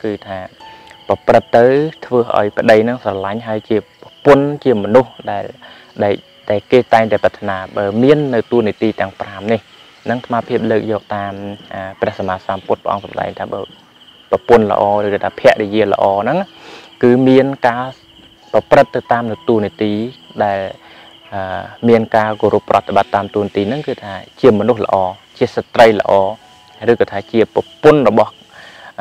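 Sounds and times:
high-pitched insect trill: 0.0s - 29.0s
man speaking: 0.0s - 29.0s.

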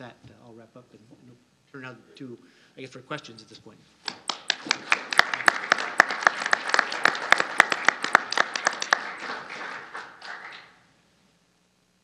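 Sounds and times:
audience applauding: 4.1s - 10.8s.

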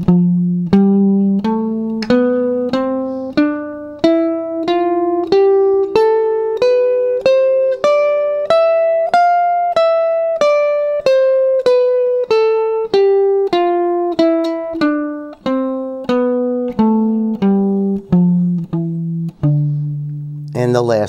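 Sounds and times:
guitar scale picked notes: 0.0s - 21.0s.

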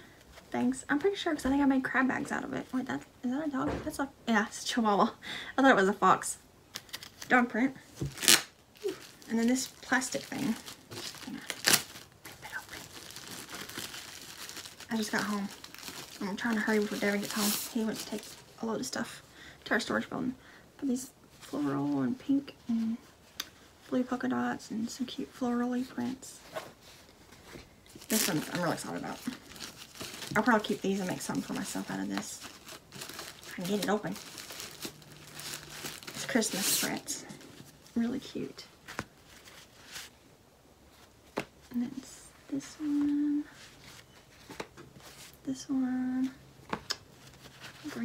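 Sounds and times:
plastic packaging crinkling: 7.9s - 18.5s, 27.9s - 37.8s.

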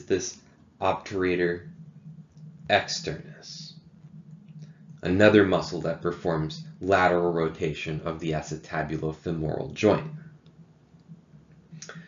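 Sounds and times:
low steady hum: 0.0s - 12.0s
faint clicks: 1.6s - 2.8s, 3.7s - 5.0s, 10.2s - 12.0s.

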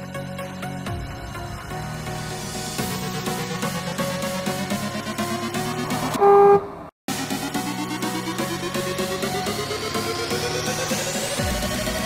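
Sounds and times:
car horn toot: 6.2s - 6.8s
electronic music: 7.2s - 12.0s.

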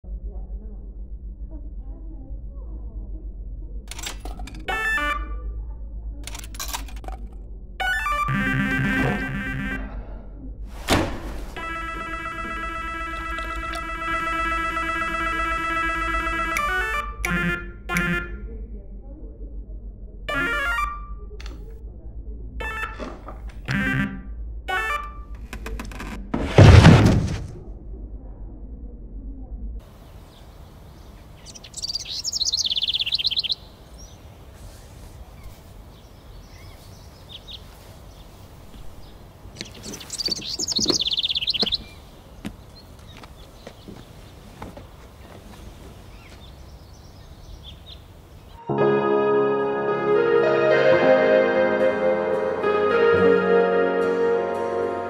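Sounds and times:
steady electronic tone: 7.8s - 10.0s
electronic beeps and jingles: 20.3s - 21.2s
songbird singing trill: 30.0s - 34.2s, 35.9s - 38.4s, 39.0s - 44.1s, 46.1s - 48.7s.

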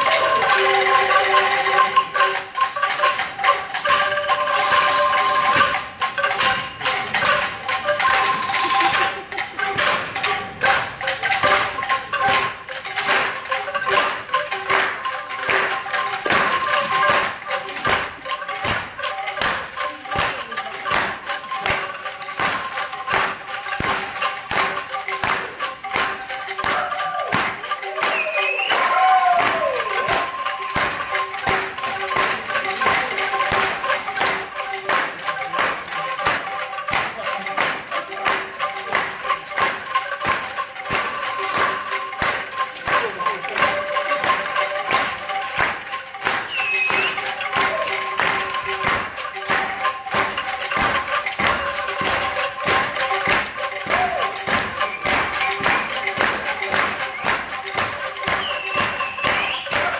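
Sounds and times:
bamboo angklungs rattling: 0.0s - 59.9s.

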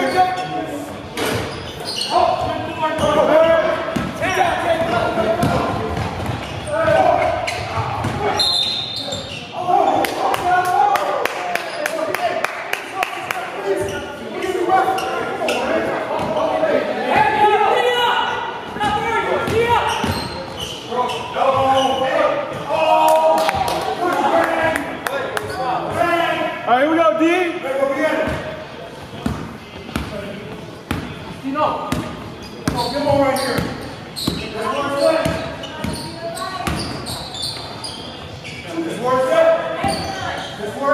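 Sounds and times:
sneaker squeaks: 0.0s - 10.4s, 13.8s - 16.6s, 18.3s - 22.6s, 25.4s - 26.0s, 31.8s - 39.0s, 39.7s - 40.8s
players' voices in echoing gym: 0.0s - 40.9s.

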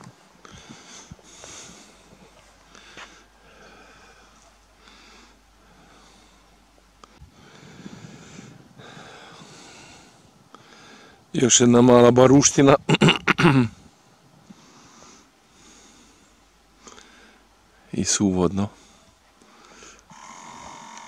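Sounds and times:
quick hissy breathing: 0.5s - 6.5s.

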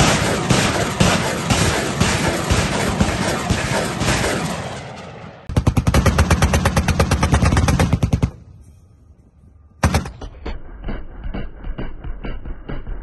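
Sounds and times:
loud cannon shot: 0.0s - 8.3s
rapid automatic cannon fire: 0.0s - 8.4s, 9.8s - 10.4s.

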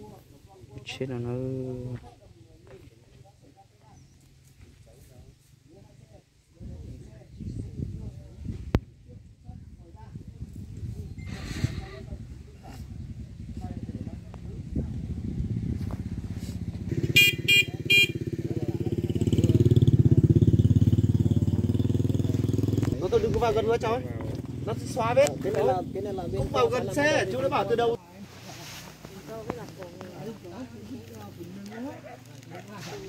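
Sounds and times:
distant voices of people talking: 0.0s - 16.2s, 16.9s - 33.0s
low microphone rumble: 6.6s - 17.2s
motorbike engine running: 13.6s - 27.6s
short horn beeps: 17.0s - 18.2s.

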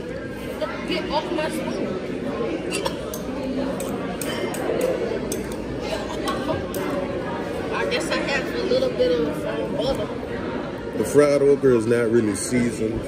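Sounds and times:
murmur of people talking: 0.0s - 13.0s
cutlery and dishes clinking: 2.7s - 7.0s.

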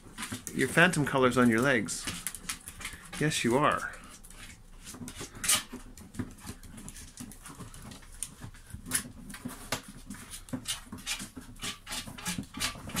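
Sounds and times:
claws scratching cardboard box: 0.0s - 13.0s.

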